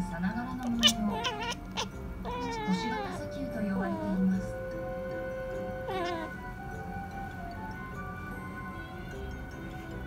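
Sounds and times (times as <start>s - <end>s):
kitten chattering: 0.6s - 4.3s, 5.6s - 6.5s.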